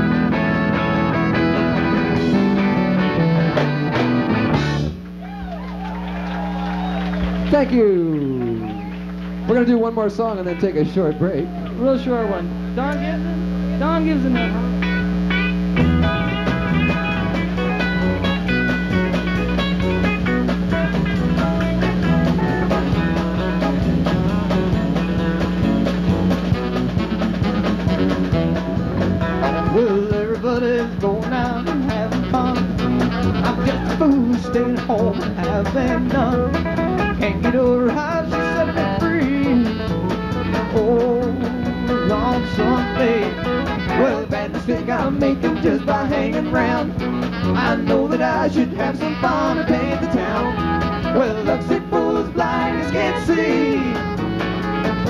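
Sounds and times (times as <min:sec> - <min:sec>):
drum kit: 0:00.0 - 0:10.6, 0:11.5 - 0:55.0
electric guitar: 0:00.0 - 0:55.0
live band playing: 0:00.0 - 0:55.0.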